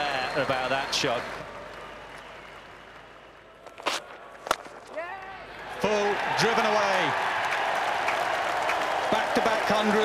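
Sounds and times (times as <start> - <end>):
faint stadium ambience: 0.0 - 10.0.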